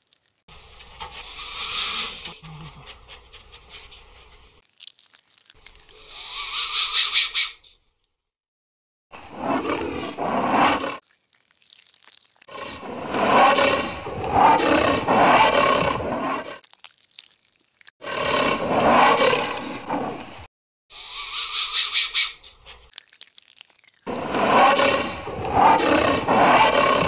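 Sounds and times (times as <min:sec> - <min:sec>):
animal roar: 0:09.2 - 0:11.0, 0:12.4 - 0:16.6, 0:18.0 - 0:20.3, 0:24.1 - 0:27.0.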